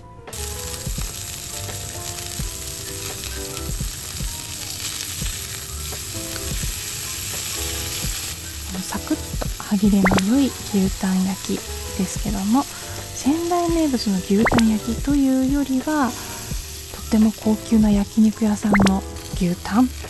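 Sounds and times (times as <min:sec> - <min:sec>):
beef sizzling: 0:00.3 - 0:20.0.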